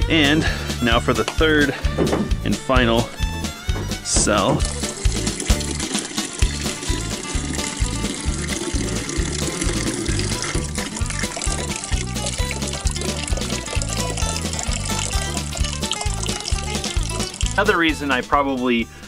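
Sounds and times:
background music with a beat: 0.0s - 18.9s
liquid pouring into a plastic bucket: 4.6s - 17.6s.

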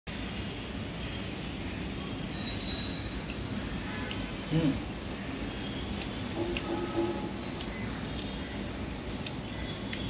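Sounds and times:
low rumbling background noise: 0.1s - 10.0s.

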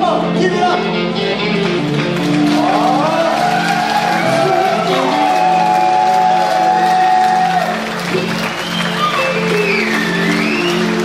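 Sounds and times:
guitars: 0.0s - 11.0s.

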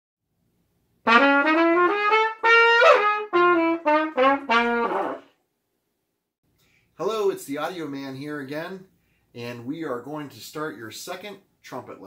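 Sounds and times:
trumpet melodic phrase: 1.1s - 5.3s.

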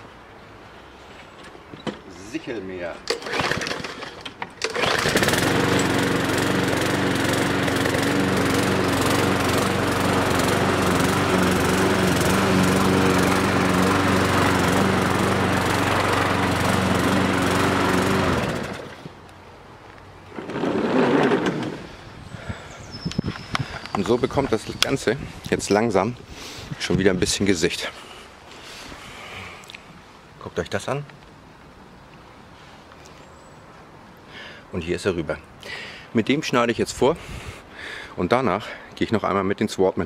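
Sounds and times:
petrol lawn mower running: 3.1s - 19.2s, 20.3s - 21.9s.

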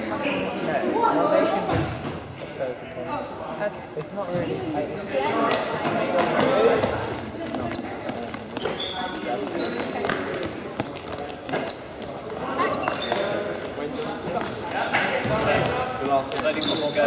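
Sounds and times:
indistinct echoing voices: 0.0s - 17.0s
trainers squeaking on court floor: 4.8s - 17.0s.

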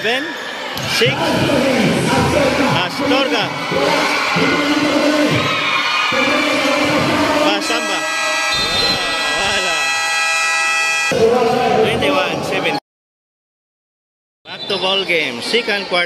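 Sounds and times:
crowd voices and cheering: 0.0s - 12.8s, 14.5s - 16.0s
basketball buzzer tone: 7.4s - 11.3s.

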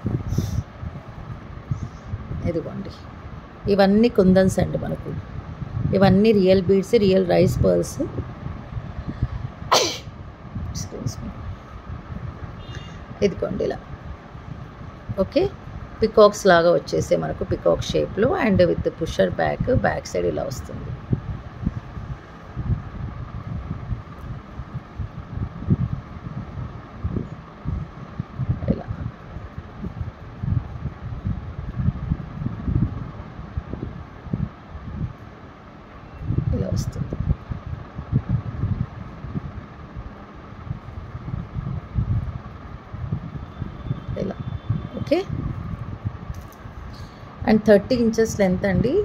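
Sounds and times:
wind buffeting microphone: 0.0s - 49.0s
person's sharp burst of breath: 0.3s - 0.7s
low rumble: 20.6s - 49.0s.

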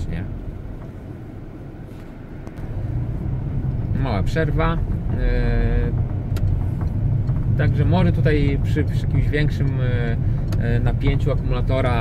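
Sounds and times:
road noise: 0.0s - 12.0s
van engine rumble: 0.0s - 12.0s.

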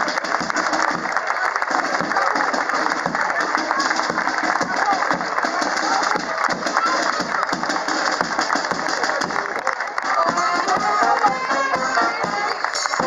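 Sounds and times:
band playing march music: 0.0s - 13.0s
crowd voices: 0.0s - 13.0s
people clapping: 0.0s - 13.0s.

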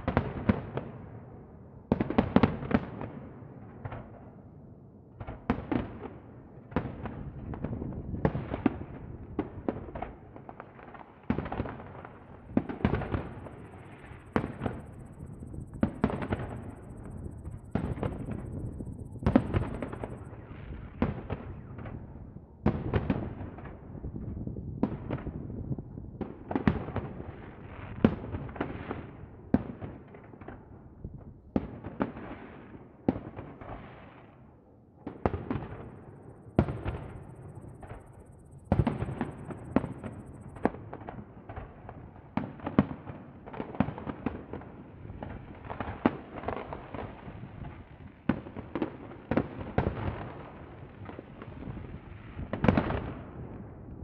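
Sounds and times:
fireworks bangs echoing: 6.7s - 22.0s, 35.0s - 47.2s.

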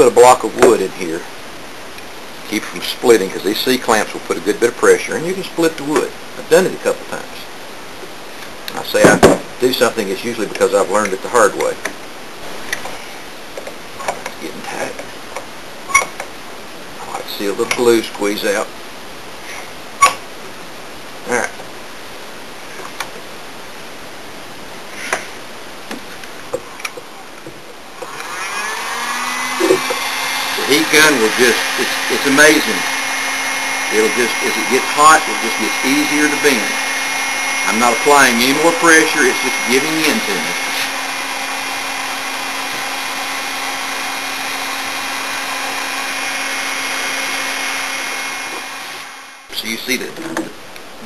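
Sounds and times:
heat gun fan whining: 27.9s - 49.9s.

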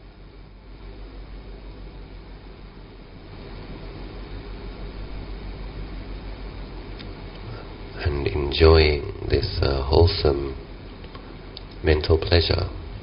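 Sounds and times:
even hiss: 0.0s - 13.0s
low background rumble: 0.0s - 13.0s.

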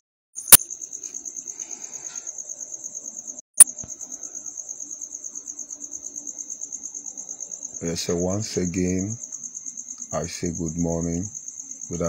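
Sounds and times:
sharp click: 0.4s - 0.7s, 3.6s - 4.0s
insect chirping trill: 0.4s - 12.0s.

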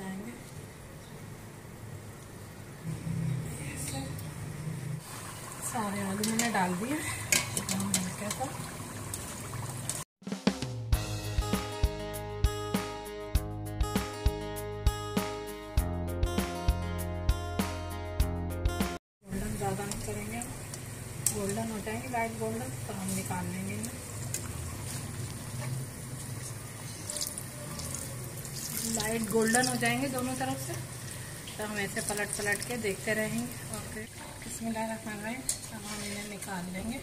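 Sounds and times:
potato slices sizzling in oil: 5.0s - 10.0s, 19.4s - 37.0s
background music with drum beat: 10.2s - 19.0s.

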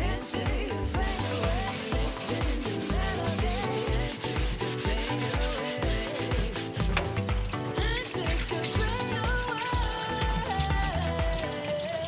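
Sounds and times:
background music with drum beat: 0.0s - 12.0s
sponge scrubbing plastic: 0.0s - 12.0s.

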